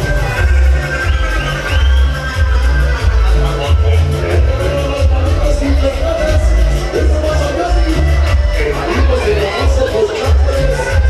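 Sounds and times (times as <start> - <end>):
loud dance music with bass beat: 0.0 - 11.0.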